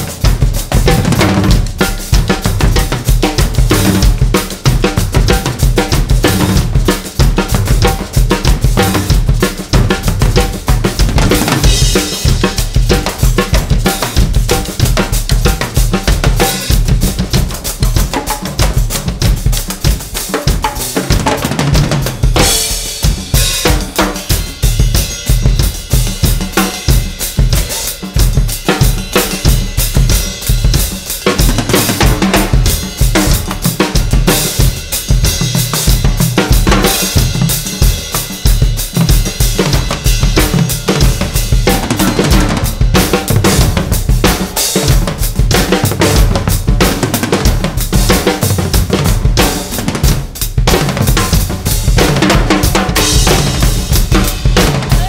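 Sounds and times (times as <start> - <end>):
drum kits playing a groove: 0.0 - 55.0
percussion: 0.0 - 55.0.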